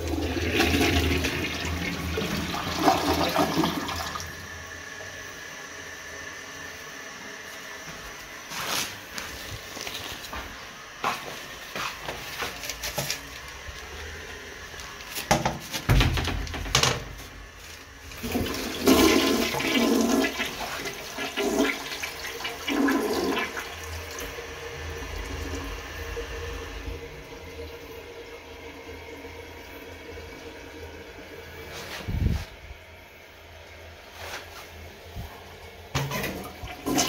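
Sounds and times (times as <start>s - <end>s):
toilet flush clicks: 0.0s - 4.4s, 18.1s - 24.4s, 36.0s - 37.0s
tank refilling water: 0.0s - 6.2s, 11.8s - 32.2s, 35.6s - 37.0s
toilet flushing water rush: 0.0s - 8.6s, 9.2s - 37.0s.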